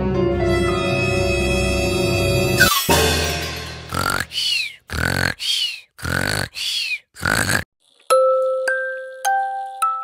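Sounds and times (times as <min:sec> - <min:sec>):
vocal bursts with high squeak: 0:03.8 - 0:07.7.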